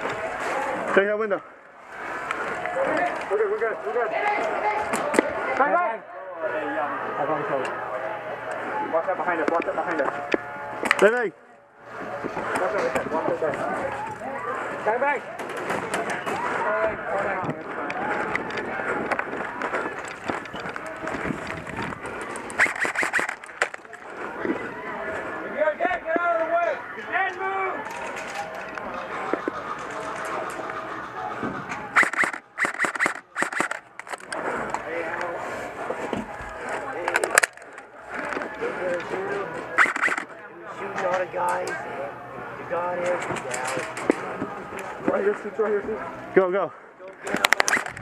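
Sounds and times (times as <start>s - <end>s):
airsoft guns firing: 22.4s - 23.9s, 32.0s - 34.2s, 39.8s - 40.3s.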